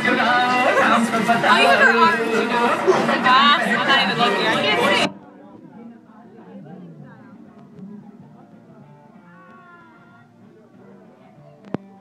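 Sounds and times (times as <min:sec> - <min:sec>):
faint party music: 0:00.0 - 0:12.0.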